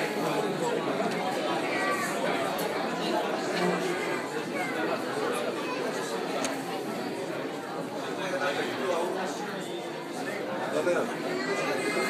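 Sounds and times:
hubbub of chatter: 0.0 - 12.0.

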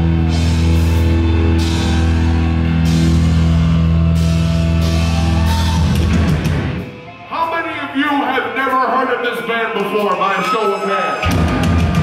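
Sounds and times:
drum kit and cymbal wash: 0.0 - 6.9, 11.2 - 12.0
distorted guitars and bass: 0.0 - 7.3, 11.1 - 12.0.

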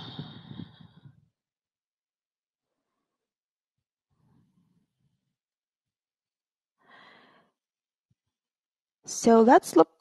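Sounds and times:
soft breathing: 0.0 - 1.3, 6.8 - 7.6.

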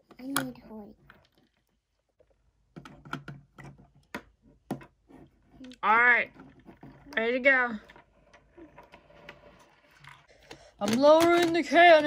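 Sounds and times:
person speaking: 5.6 - 6.4, 10.8 - 12.0
plastic toys clicking on table: 10.4 - 12.0.

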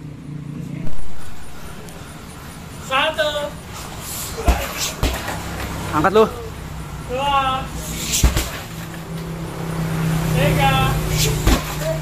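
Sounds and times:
low motor hum: 0.8 - 4.1
kick thudding on punching bag: 4.4 - 5.4, 8.1 - 8.7, 11.4 - 11.9.

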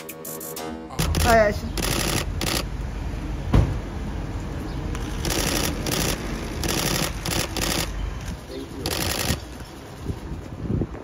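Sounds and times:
street noise: 0.0 - 11.0
camera shutters clicking rapidly: 1.0 - 2.6, 5.0 - 9.5.

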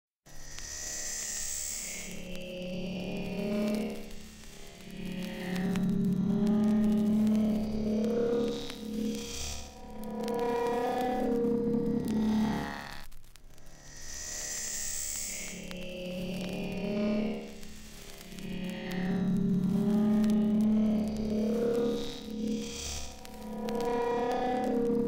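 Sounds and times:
drum and bass synthesizer tones: 18.2 - 25.0.

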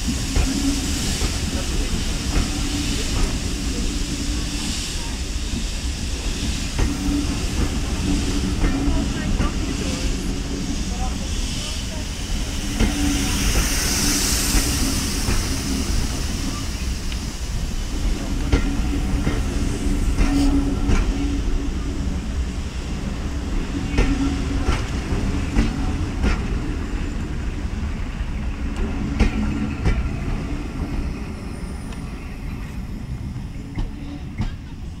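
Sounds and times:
steam hissing: 0.0 - 35.0
train carriages rumbling: 0.0 - 35.0.

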